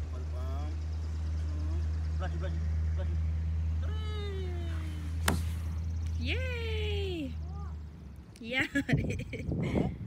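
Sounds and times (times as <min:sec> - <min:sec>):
sharp knock: 0:05.2 - 0:05.6.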